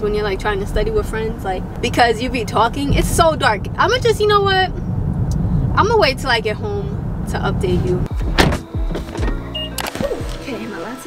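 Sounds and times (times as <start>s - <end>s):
car door shutting: 7.6s - 10.6s
background music: 8.0s - 11.0s.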